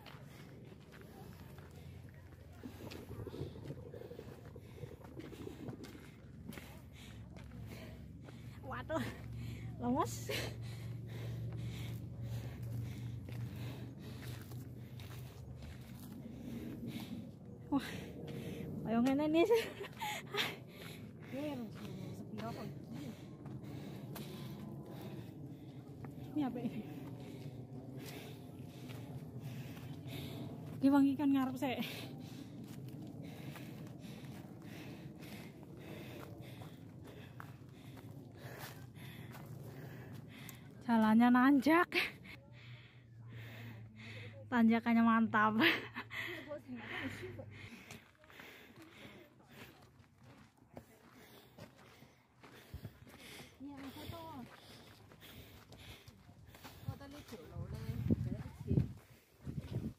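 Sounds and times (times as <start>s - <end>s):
footsteps on dirt trail: 0.0s - 42.3s, 45.6s - 59.9s
low hum: 0.0s - 59.9s
steady low rumble: 0.0s - 59.9s.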